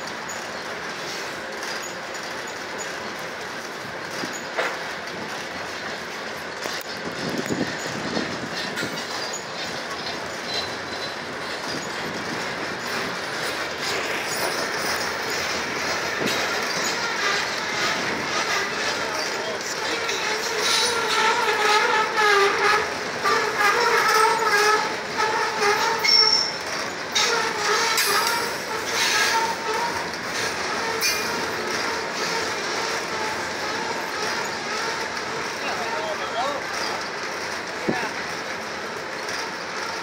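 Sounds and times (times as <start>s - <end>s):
freight train wheels rumbling: 0.0s - 40.0s.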